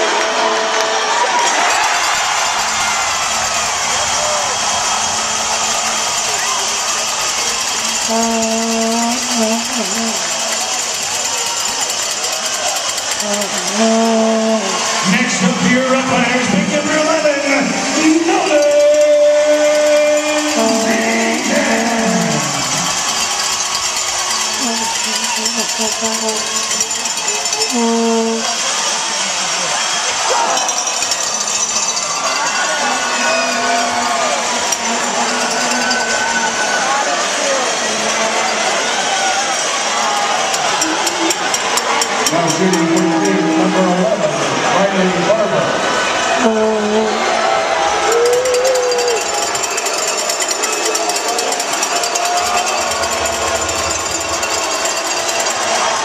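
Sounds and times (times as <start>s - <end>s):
crowd voices talking and calling: 0.0s - 56.0s
rapid even rattling: 48.6s - 56.0s.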